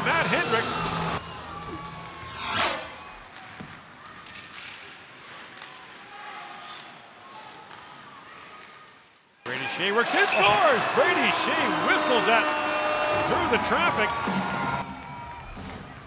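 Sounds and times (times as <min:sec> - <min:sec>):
arena crowd noise: 0:00.0 - 0:16.0.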